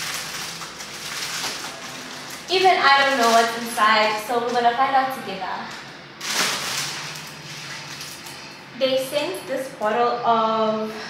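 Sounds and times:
cellophane crinkling: 0.0 - 5.0, 5.6 - 8.7.

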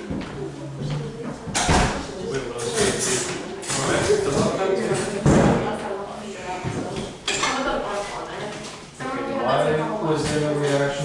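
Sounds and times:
indistinct voices in a room: 0.0 - 11.0.

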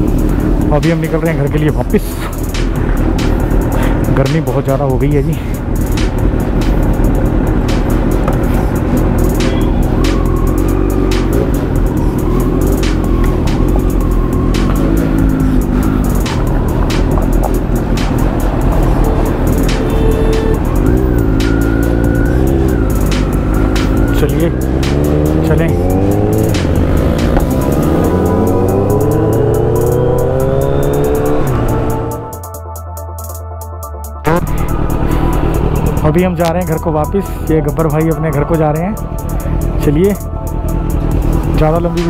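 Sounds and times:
instrumental hip-hop beat: 0.0 - 42.0
motorcycle engine accelerating: 6.0 - 32.4, 34.2 - 36.8.

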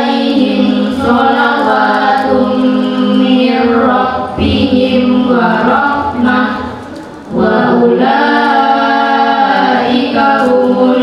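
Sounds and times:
children chanting over loudspeaker: 0.0 - 11.0.

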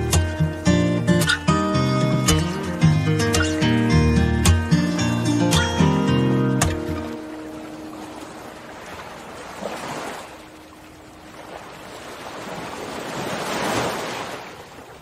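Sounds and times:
guitar chord: 0.0 - 7.5
ocean waves washing in: 0.0 - 15.0.

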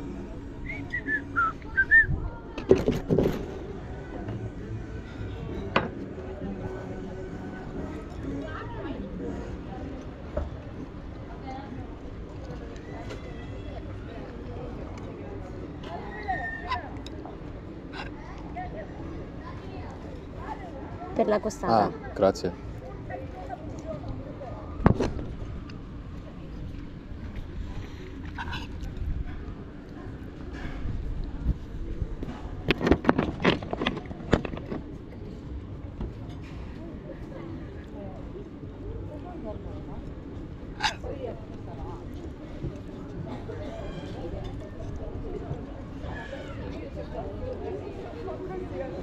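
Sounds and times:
low steady background noise: 0.0 - 49.0
murmur of voices: 0.0 - 49.0
whistled chirps: 0.6 - 2.1.

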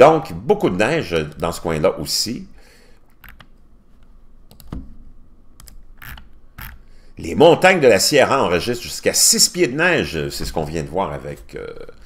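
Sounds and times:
computer mouse clicking: 3.2 - 3.5, 4.5 - 4.9, 5.6 - 6.8
scroll wheel ratcheting: 6.0 - 6.8.

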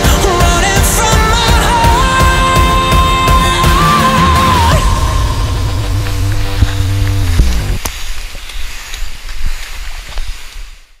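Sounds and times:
pop-rock chord sliding down: 0.0 - 7.8
hiss with clicks: 5.7 - 11.0.

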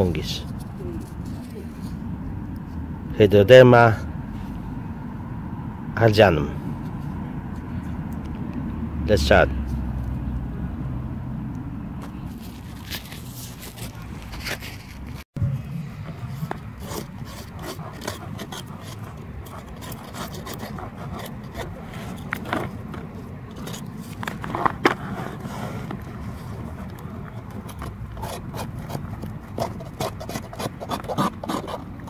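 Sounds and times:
outdoor background rumble: 0.0 - 32.0.

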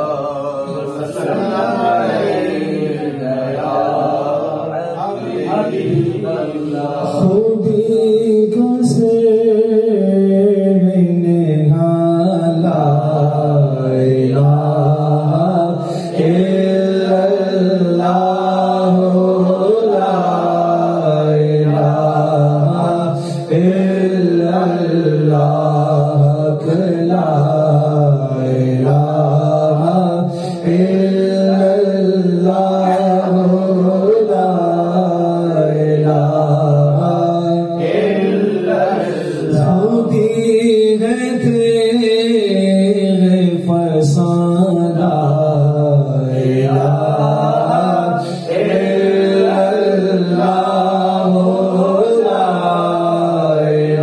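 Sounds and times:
men chanting together: 0.0 - 9.3, 11.7 - 42.4, 44.1 - 54.0.

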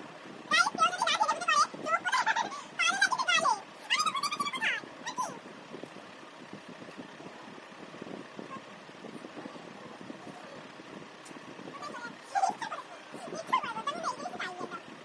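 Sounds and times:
girl squealing: 0.6 - 5.4.

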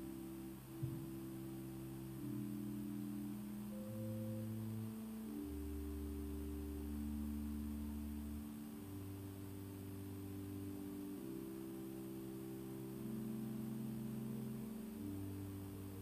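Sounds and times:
church organ slow chords: 0.0 - 16.0.

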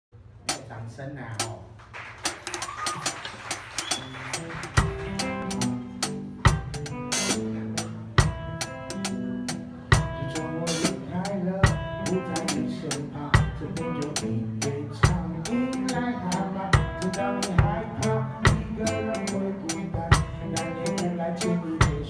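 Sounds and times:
drum kit playing a rock groove: 0.3 - 22.0
pitched backing track: 2.2 - 22.0.

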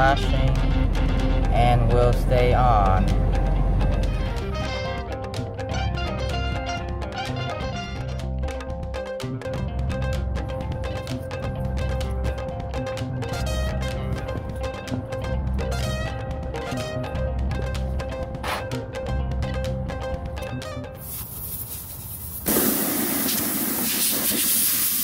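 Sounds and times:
background music with beat: 0.0 - 21.2
air hissing from tire: 21.0 - 25.0.

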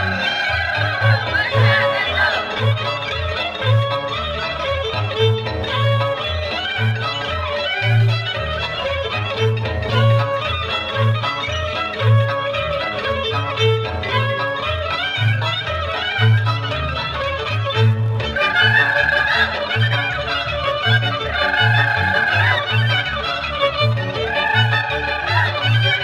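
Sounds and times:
fiddle melody: 0.0 - 26.0.

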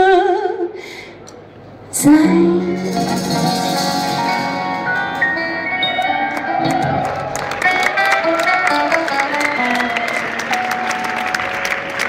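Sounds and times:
crowd noise: 1.1 - 12.0
drums: 2.0 - 9.7
guitar lines: 2.0 - 12.0.

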